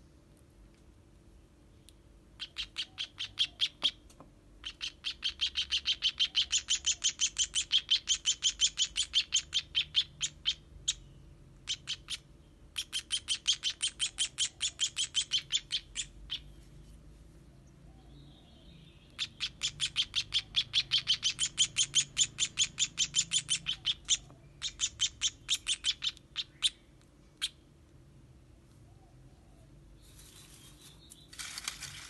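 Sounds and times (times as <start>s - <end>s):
baby bird begging chirps: 2.3s - 4.0s, 4.6s - 16.6s, 18.5s - 27.6s.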